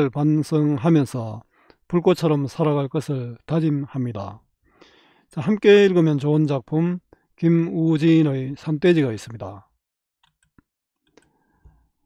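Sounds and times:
computer mouse clicks: 10.2 - 11.8.

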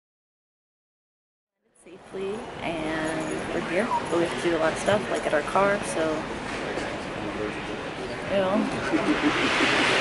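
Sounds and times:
voices talking: 2.0 - 10.0.

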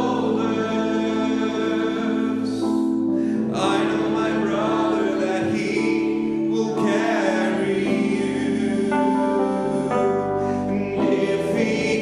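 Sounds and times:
electronic keyboard chords: 0.0 - 12.0.

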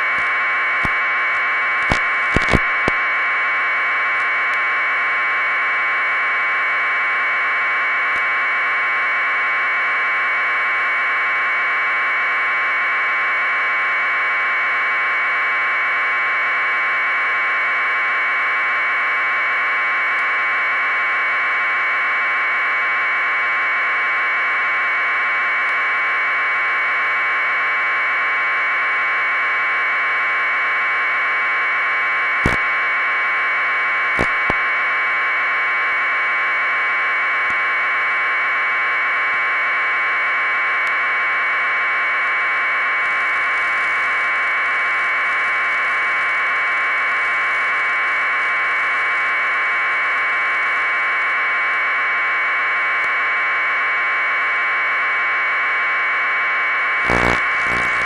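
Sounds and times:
loud static hiss: 1.8 - 3.0, 34.2 - 34.6, 57.0 - 58.0
sharp clicks: 1.9 - 3.0.

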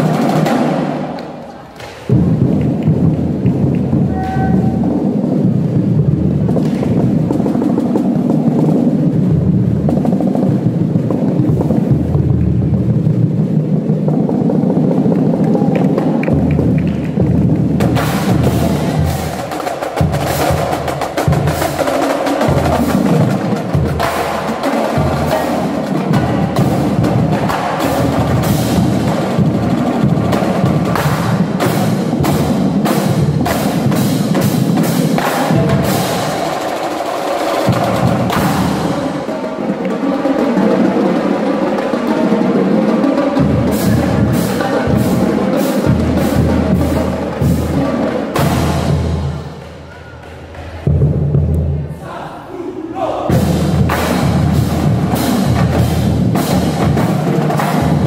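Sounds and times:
marching drumline: 0.0 - 58.0.

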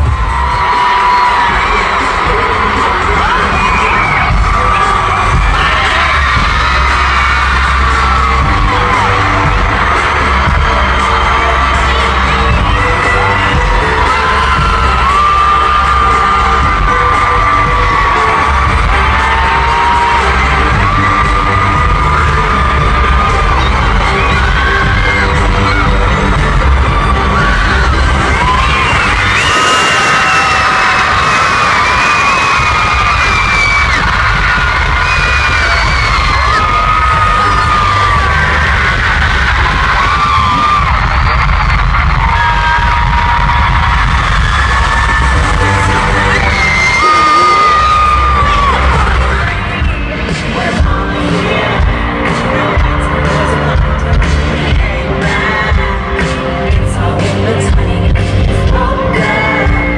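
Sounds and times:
amplified pop music with bass: 0.0 - 59.9
crowd cheering and singing along: 0.0 - 59.9
person singing: 0.4 - 43.2, 44.8 - 59.9.

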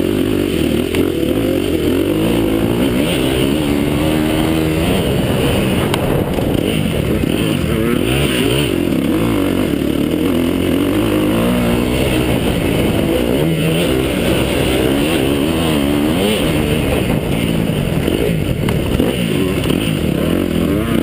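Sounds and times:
motorcycle engine revving: 0.0 - 21.0.

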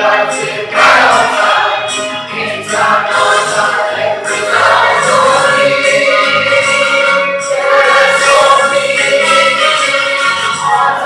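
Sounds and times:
mixed choir singing gospel: 0.0 - 11.0.

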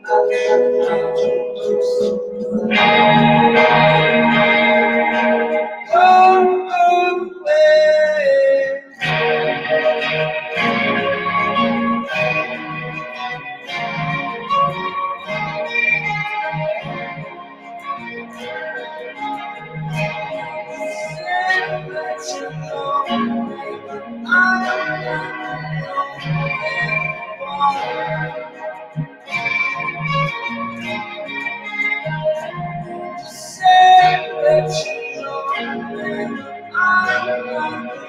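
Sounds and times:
psychedelic rock band playing live: 0.0 - 7.0, 9.0 - 38.0
electric guitars: 0.0 - 38.0
keyboard: 0.0 - 38.0.

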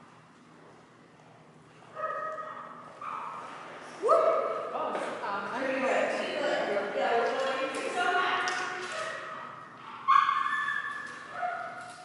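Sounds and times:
dog high-pitched call: 10.1 - 11.8.

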